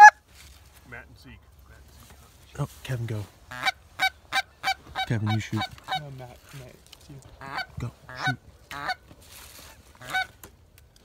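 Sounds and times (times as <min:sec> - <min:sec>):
soft rustle: 0:00.2 - 0:04.0, 0:04.6 - 0:07.4, 0:09.0 - 0:10.5
goose honk: 0:03.5 - 0:06.1, 0:07.4 - 0:09.0, 0:10.0 - 0:10.3.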